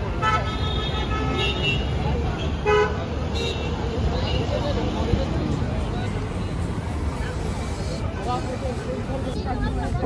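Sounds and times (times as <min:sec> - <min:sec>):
rumble of passing vehicles: 0:00.0 - 0:10.0.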